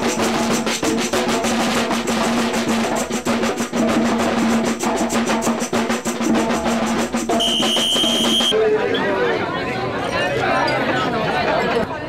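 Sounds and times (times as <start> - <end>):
drums playing a fast beat: 0.0 - 8.6
shrill whistle: 7.3 - 8.6.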